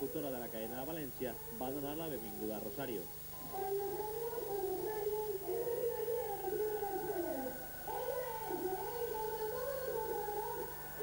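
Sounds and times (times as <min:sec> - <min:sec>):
woman singing into microphone: 0:03.4 - 0:11.0.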